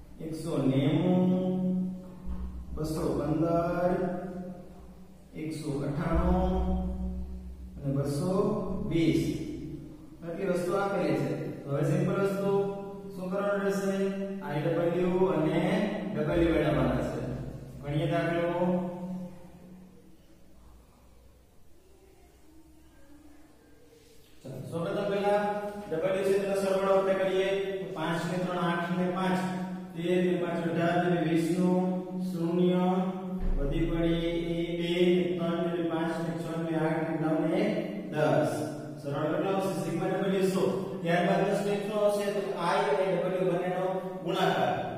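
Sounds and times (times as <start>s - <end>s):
man speaking slowly: 0.0s - 19.8s, 24.0s - 44.9s.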